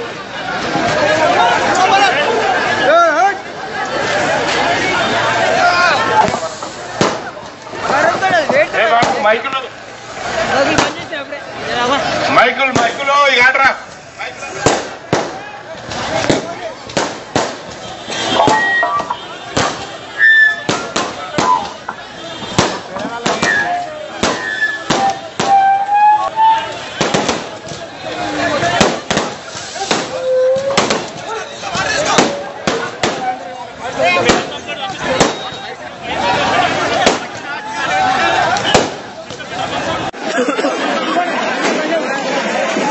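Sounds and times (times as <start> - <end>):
crowd shouting: 0.0 - 42.9
people's voices: 0.0 - 42.9
firecrackers going off: 3.8 - 40.1
sharp crack: 6.2 - 8.3, 9.0 - 9.6, 12.7 - 13.1, 13.9 - 25.8, 26.8 - 27.9, 28.6 - 31.3, 32.0 - 33.4, 34.2 - 35.6, 36.9 - 37.5, 38.5 - 39.1.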